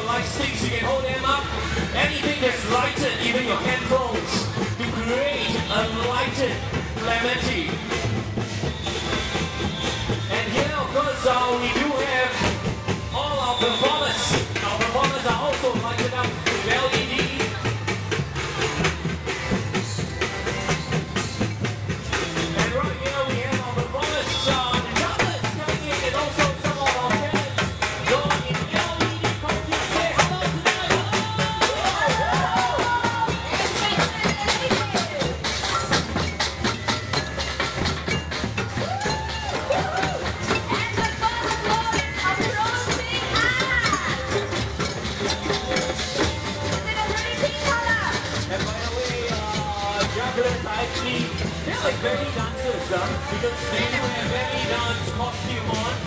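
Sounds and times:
crowd: 0.0 - 56.0
parade music: 0.0 - 56.0
samba drums playing: 0.0 - 56.0.

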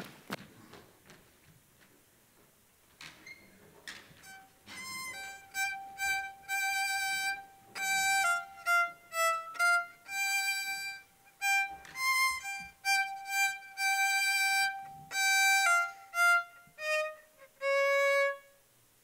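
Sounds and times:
solo violin slow melody: 4.1 - 18.7.

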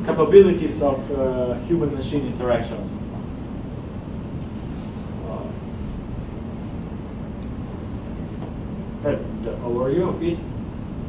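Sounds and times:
steady low room rumble: 0.0 - 11.0.

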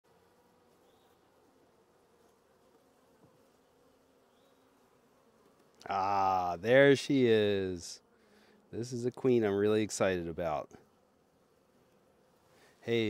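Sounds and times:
honeybees humming: 0.0 - 13.0.

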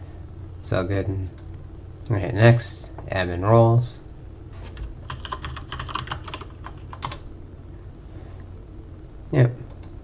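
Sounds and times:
computer keyboard typing: 4.7 - 7.2.

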